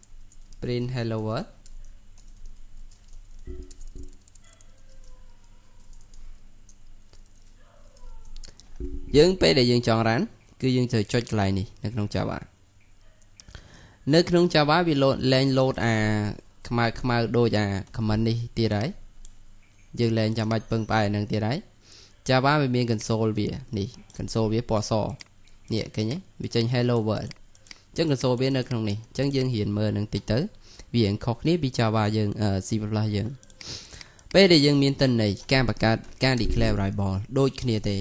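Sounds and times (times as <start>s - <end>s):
computer mouse clicks: 0.0s - 0.6s, 1.6s - 9.1s, 12.8s - 13.6s, 23.9s - 26.1s, 26.8s - 29.6s, 33.2s - 34.5s, 35.8s - 37.7s
speech: 0.6s - 1.6s, 9.1s - 12.5s, 14.1s - 19.0s, 20.0s - 21.7s, 22.3s - 27.4s, 28.0s - 33.4s, 34.3s - 38.0s
keyboard keystroke clicks: 1.6s - 9.1s.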